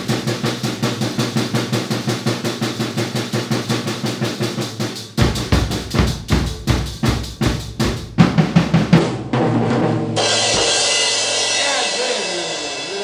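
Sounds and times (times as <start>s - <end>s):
bass drum beats: 0.0s - 13.0s
drum roll with sticks: 0.0s - 13.0s.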